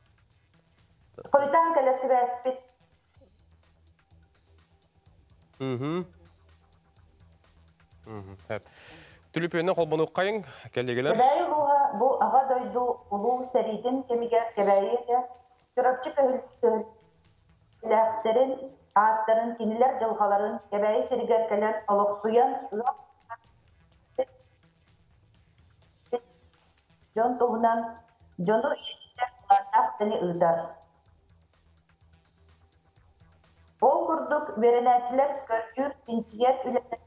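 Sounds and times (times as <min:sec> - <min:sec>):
woman speaking: 0:01.2 - 0:02.6, 0:11.1 - 0:16.9, 0:17.8 - 0:23.0, 0:27.2 - 0:30.8, 0:33.8 - 0:37.0
person talking: 0:05.6 - 0:06.1, 0:08.1 - 0:15.2.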